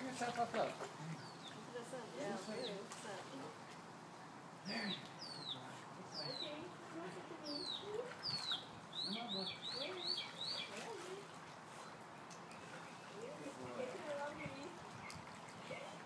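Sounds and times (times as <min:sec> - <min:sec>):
small bird peeping: 0:07.5 - 0:10.8.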